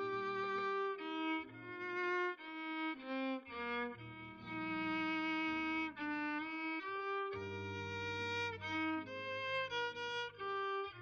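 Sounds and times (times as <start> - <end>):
low sustained accompaniment: 0.0 - 11.0
violin slow melody: 0.0 - 11.0.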